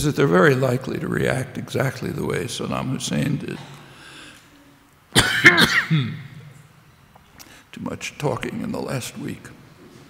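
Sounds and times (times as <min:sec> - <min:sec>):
man coughing into microphone: 0:05.2 - 0:06.6.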